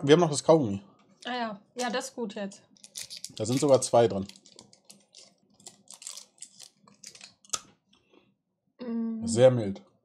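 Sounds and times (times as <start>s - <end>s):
gum chewing clicks and crunches: 2.8s - 8.1s.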